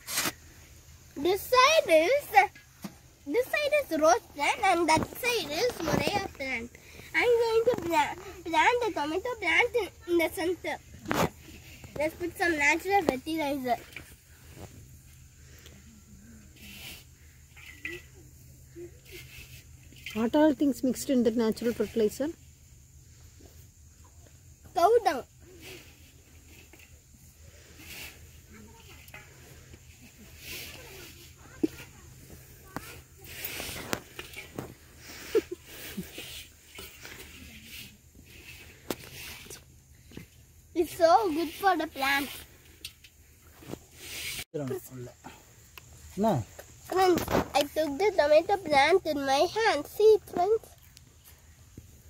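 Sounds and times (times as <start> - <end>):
compost rustling and scraping: 0.0 - 52.0.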